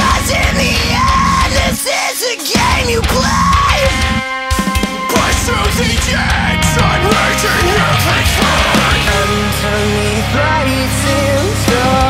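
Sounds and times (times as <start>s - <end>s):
heavy rock song with screamed vocals: 0.0s - 12.0s.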